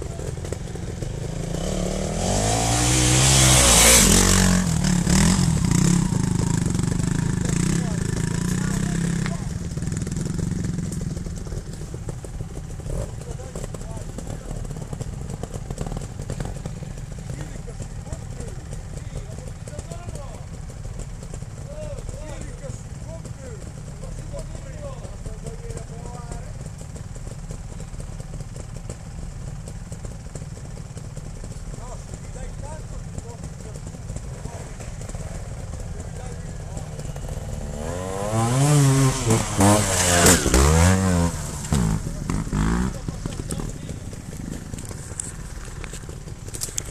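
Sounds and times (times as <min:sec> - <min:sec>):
motorcycle engine at low revs: 0:00.0 - 0:46.9.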